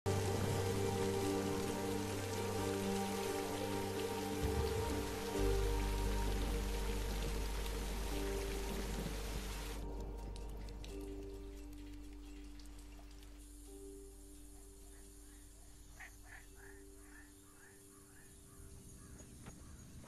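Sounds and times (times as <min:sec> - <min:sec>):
film score with low drone: 0:00.1 - 0:20.0
rain hiss: 0:00.1 - 0:20.0.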